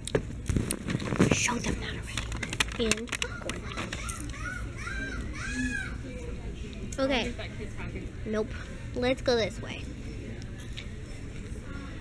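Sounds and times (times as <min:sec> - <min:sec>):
children's voices calling: 0:02.8 - 0:06.1.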